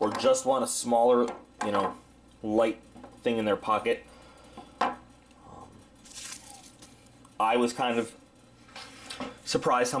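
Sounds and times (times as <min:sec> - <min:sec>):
bubble wrap crinkling: 0:06.0 - 0:07.1.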